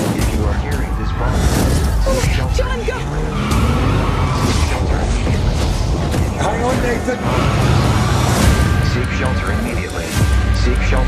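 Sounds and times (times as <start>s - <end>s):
heavy low rumble: 0.0s - 11.0s
trailer music: 0.0s - 11.0s.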